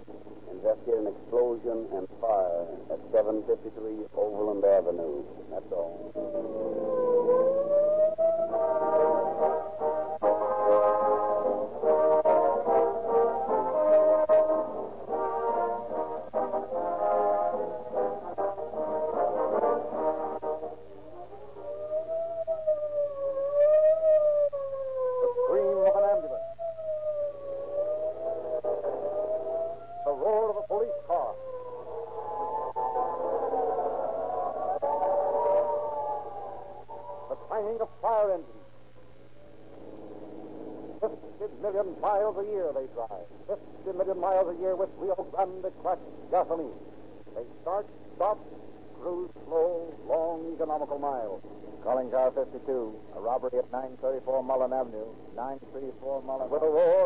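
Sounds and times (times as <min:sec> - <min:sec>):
police siren wailing: 0:05.8 - 0:38.8
orchestral music with brass: 0:08.5 - 0:21.0.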